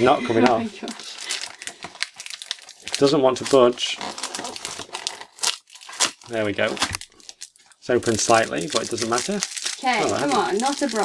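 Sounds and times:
foil pack crinkling and tearing: 0:00.9 - 0:11.0.

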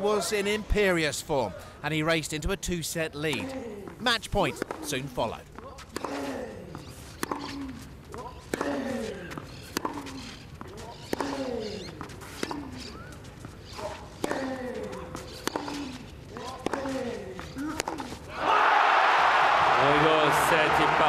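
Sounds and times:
tennis racket hitting ball: 0:04.5 - 0:04.9, 0:05.6 - 0:06.3, 0:07.2 - 0:07.6, 0:08.2 - 0:10.2, 0:11.0 - 0:12.7, 0:14.2 - 0:18.2
player grunting: 0:06.0 - 0:06.7.

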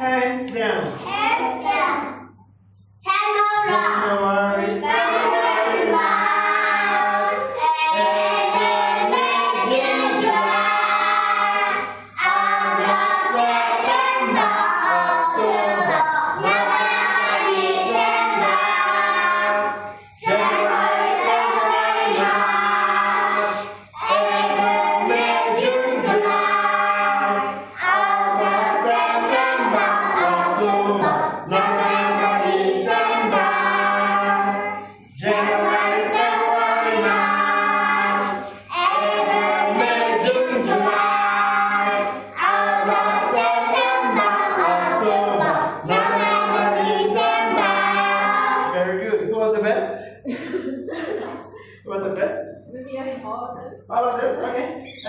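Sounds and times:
children singing: 0:03.1 - 0:49.0.

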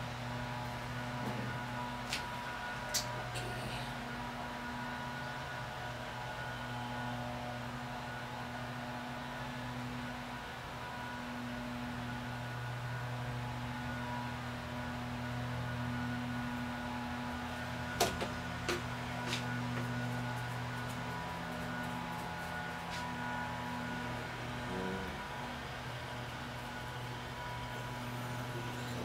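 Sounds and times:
faint high whining tones: 0:00.0 - 0:29.0
steady low hum: 0:00.0 - 0:29.0.

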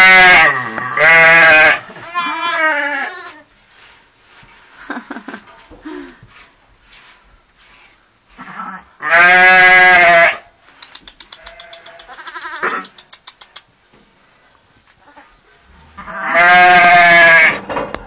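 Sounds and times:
sheep bleating: 0:00.0 - 0:03.4, 0:09.0 - 0:10.4, 0:11.4 - 0:12.9, 0:16.0 - 0:17.6
faint quick clicks: 0:10.7 - 0:12.2, 0:12.8 - 0:13.7.

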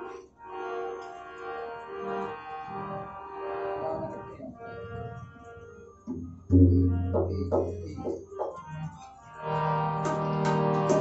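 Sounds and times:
harmonium slow melody: 0:00.0 - 0:11.0.

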